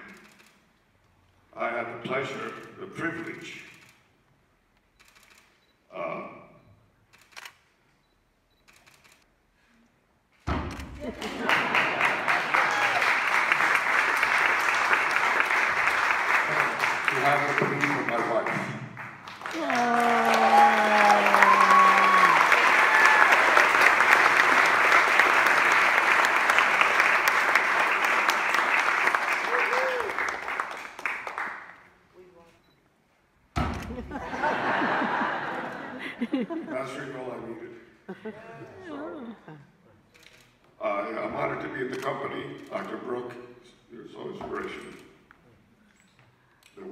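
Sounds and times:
large audience applauding: 11.0 - 31.9.

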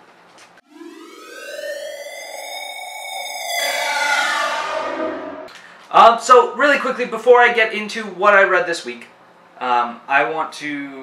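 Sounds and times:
rising electronic tone: 0.6 - 5.8.

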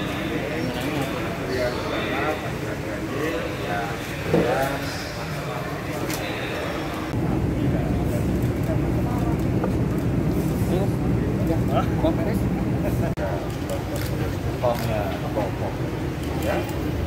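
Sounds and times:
people talking at a distance: 0.0 - 17.0.

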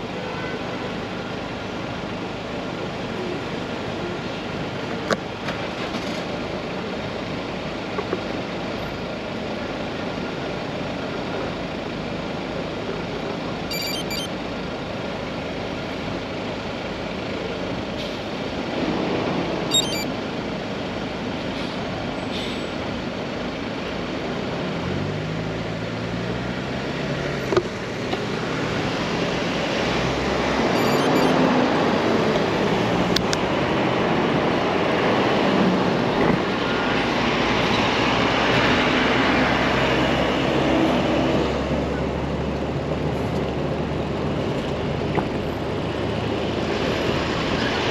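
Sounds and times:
city road traffic: 0.0 - 47.9.

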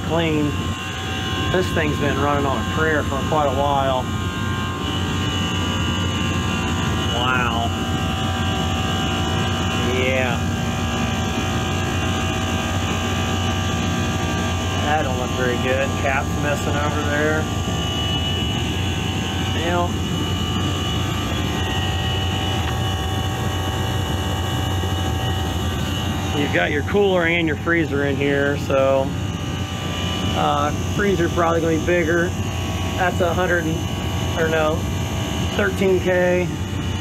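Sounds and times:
condensing unit humming: 0.0 - 37.0
faint steady tones: 0.0 - 37.0.

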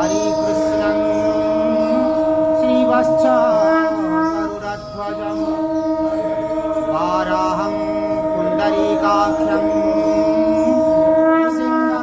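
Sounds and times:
devotional chanting: 0.0 - 12.0
steady held drone: 0.0 - 12.0.

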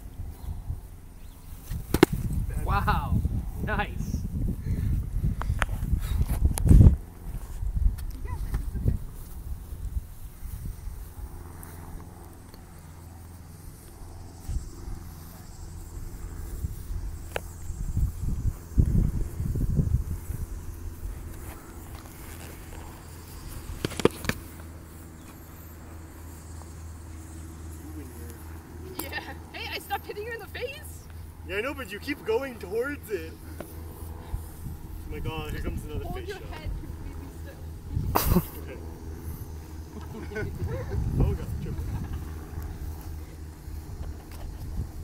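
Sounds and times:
wind rumble on microphone: 0.0 - 12.4, 13.4 - 25.2, 33.7 - 45.0.

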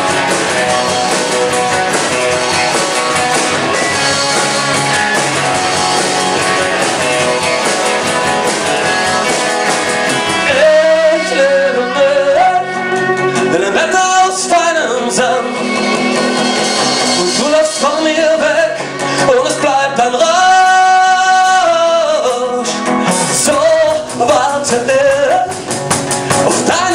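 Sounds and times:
person singing: 0.0 - 25.7, 26.3 - 26.9
live rock band playing: 0.0 - 26.9.

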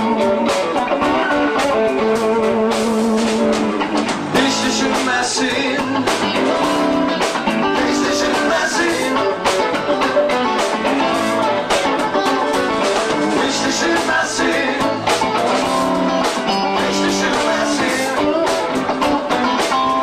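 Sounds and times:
drums: 0.0 - 20.0
electric guitar: 0.0 - 20.0
man singing: 1.0 - 2.0, 4.3 - 6.9, 7.6 - 9.7, 13.2 - 15.5, 16.6 - 18.8.

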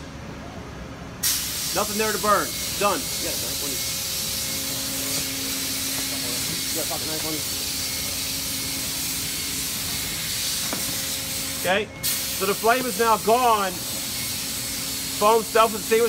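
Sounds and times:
blowtorch flame hissing: 1.2 - 15.8.

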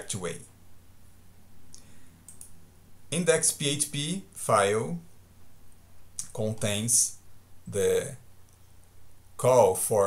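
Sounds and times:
steady low hum: 0.0 - 10.0
computer mouse clicks: 1.7 - 2.6.

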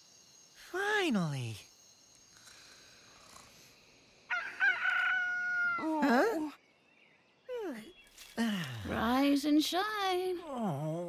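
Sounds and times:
rooster crowing: 4.3 - 5.8.

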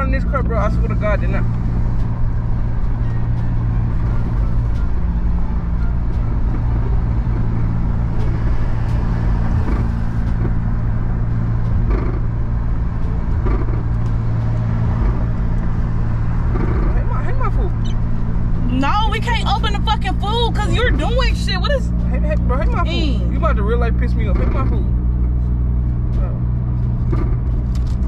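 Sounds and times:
car engine and road rumble: 0.0 - 28.0.

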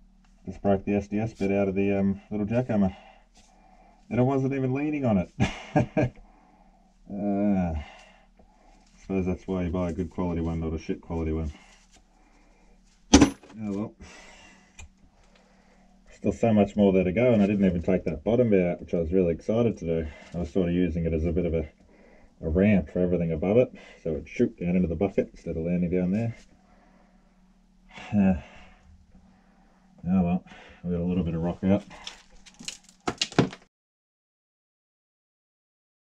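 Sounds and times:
faint rustling handling noise: 8.4 - 14.0
loose rock scraping and crunching: 31.8 - 33.6.

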